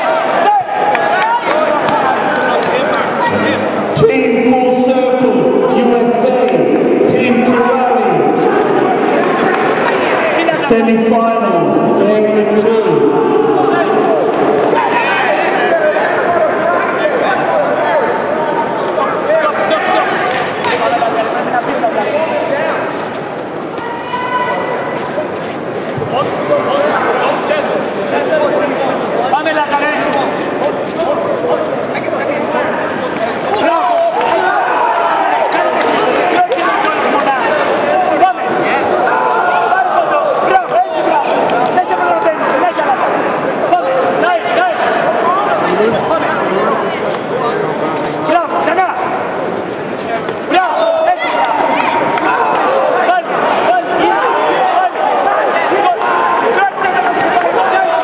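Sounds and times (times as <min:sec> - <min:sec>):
people shouting over one another: 0:00.0 - 0:02.4, 0:12.8 - 0:17.2.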